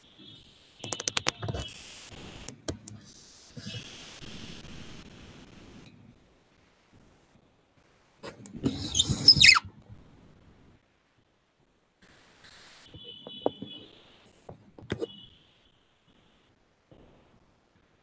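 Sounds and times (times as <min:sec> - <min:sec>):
short falling squeak: 0:08.7 - 0:09.7.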